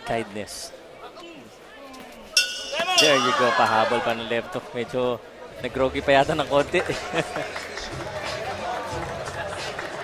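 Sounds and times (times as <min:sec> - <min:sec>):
boxing ring bell ringing: 0:02.4 - 0:04.2.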